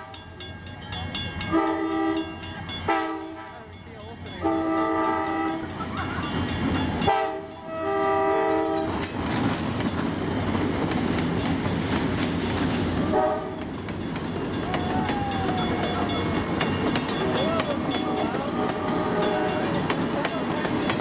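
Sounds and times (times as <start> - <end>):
train engines and wheels rumbling: 0.0 - 21.0
locomotive air horn blasts: 1.5 - 2.3, 2.9 - 3.5, 4.4 - 5.6, 7.0 - 9.0, 13.0 - 13.6.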